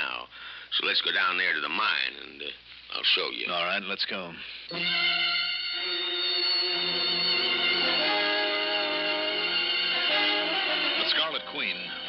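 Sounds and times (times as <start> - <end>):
held chords music bridge: 4.7 - 12.0.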